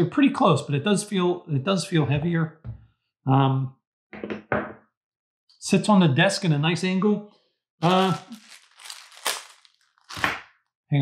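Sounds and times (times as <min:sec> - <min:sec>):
plastic packaging crinkling: 0:07.8 - 0:10.3.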